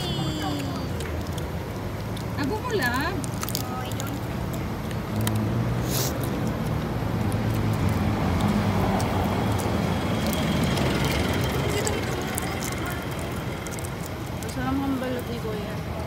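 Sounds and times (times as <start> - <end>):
street traffic noise: 0.0 - 16.0
vehicle engine running close: 0.0 - 16.0.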